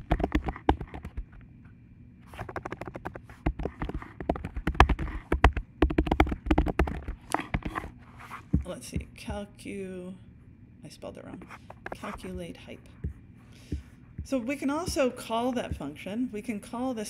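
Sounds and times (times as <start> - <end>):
keyboard typing: 0.0 - 1.4, 2.3 - 7.9, 11.4 - 15.9.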